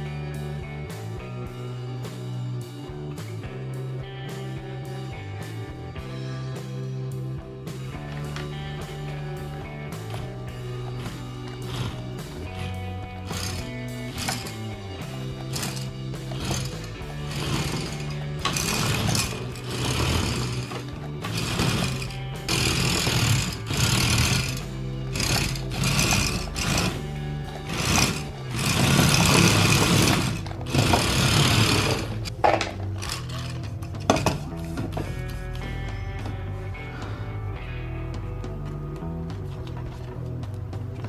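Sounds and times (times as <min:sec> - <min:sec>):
background music: 0:00.0 - 0:41.0
plastic wheels skidding on floor: 0:15.5 - 0:24.6, 0:25.2 - 0:34.5.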